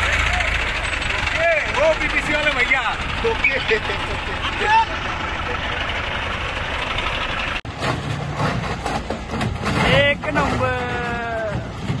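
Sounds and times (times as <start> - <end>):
forklift engine running: 0.0 - 12.0
heavy vehicle engine running unevenly: 0.0 - 12.0.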